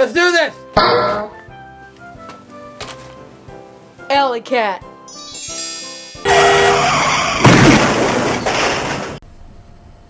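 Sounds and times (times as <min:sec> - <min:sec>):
steady tones: 0:00.8 - 0:01.6.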